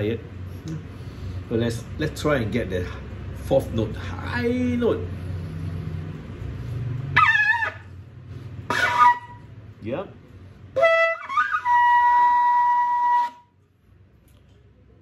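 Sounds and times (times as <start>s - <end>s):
shofar blowing: 7.1s - 7.9s, 8.7s - 9.5s, 10.7s - 13.5s.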